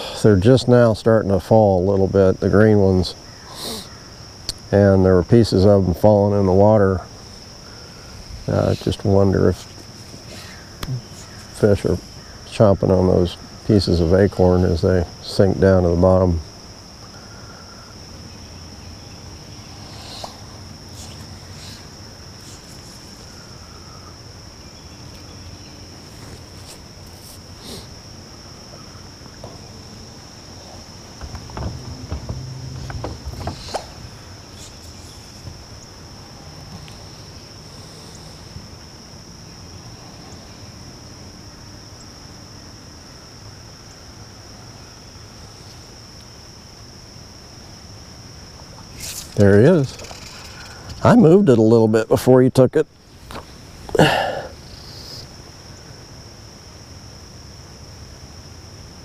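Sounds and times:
faint low hum: 0.0s - 59.0s
insects droning: 0.0s - 59.0s
low bumping: 29.4s - 35.6s
light knocks: 31.2s - 34.0s.

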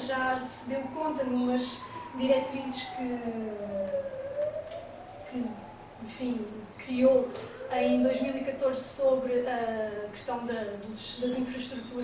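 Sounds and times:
siren wailing: 0.0s - 10.1s
person speaking: 5.3s - 11.8s.

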